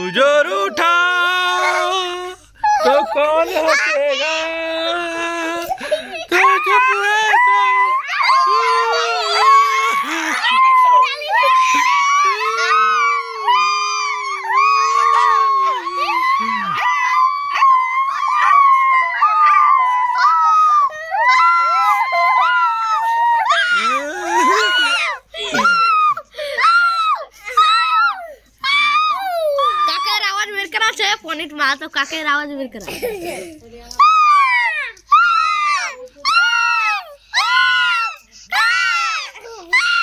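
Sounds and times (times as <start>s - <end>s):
children shrieking and howling: 0.0s - 30.6s, 33.9s - 40.0s.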